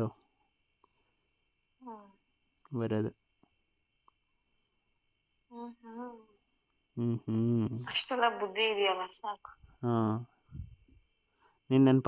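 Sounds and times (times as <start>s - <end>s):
person humming: 7.0s - 7.8s.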